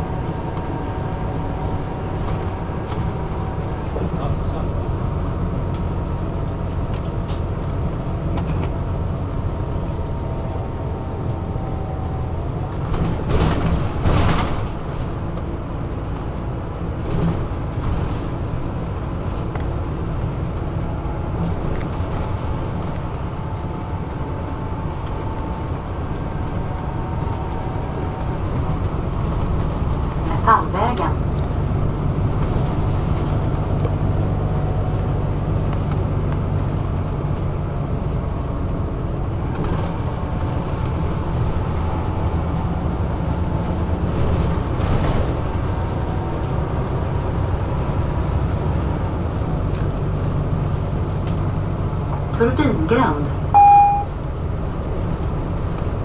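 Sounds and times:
bus engine and road rumble: 0.0s - 56.0s
short high-pitched sound: 53.6s - 54.1s.

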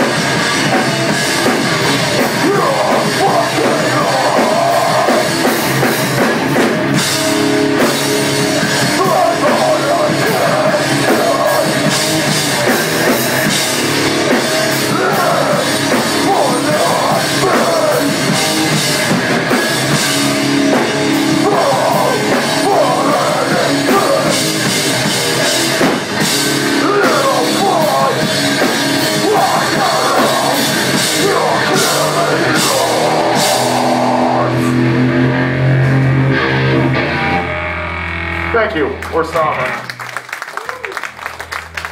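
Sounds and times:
drum kit: 0.0s - 37.6s
bass guitar: 0.0s - 41.9s
distorted electric guitar: 0.0s - 41.9s
hardcore band playing: 0.0s - 41.9s.

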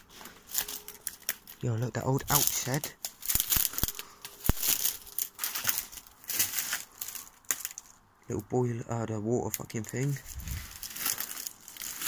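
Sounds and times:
footsteps crunching through undergrowth: 0.0s - 8.0s, 10.0s - 12.0s.

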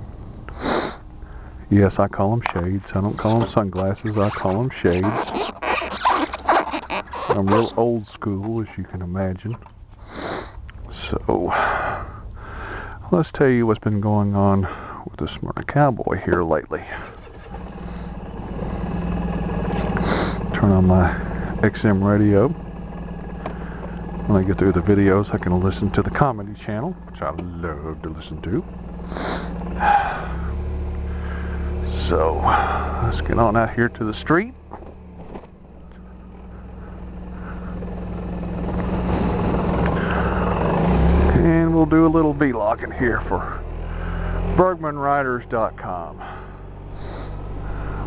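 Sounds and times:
scooter engine idling: 0.0s - 13.1s, 14.2s - 15.0s, 16.2s - 48.0s
person sniffing: 0.5s - 1.5s, 10.0s - 10.6s, 19.7s - 20.4s, 29.0s - 30.4s, 46.9s - 48.0s
zipper on fabric bag: 3.2s - 7.7s.

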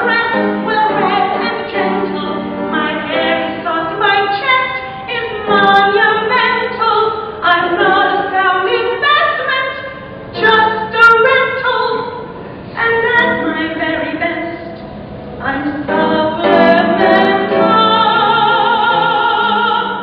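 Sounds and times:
woman singing musical theatre solo: 15.4s - 20.0s.

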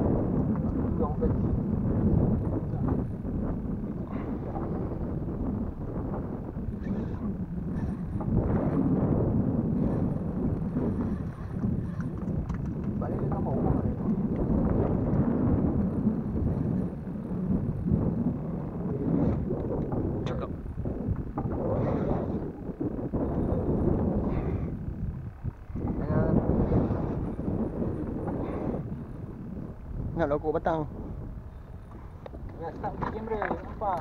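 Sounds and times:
choppy water: 0.0s - 24.8s, 29.9s - 34.0s
rumbling wind on microphone: 0.0s - 34.0s.

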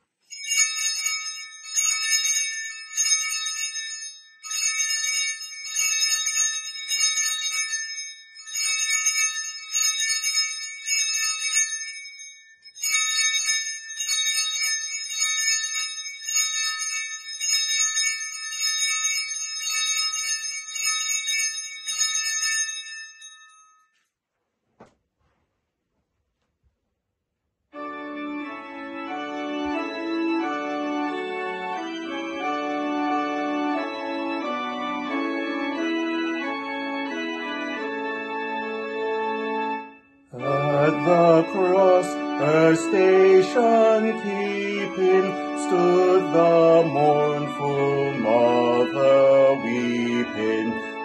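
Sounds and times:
small bells ringing: 0.0s - 24.0s, 39.8s - 51.0s.

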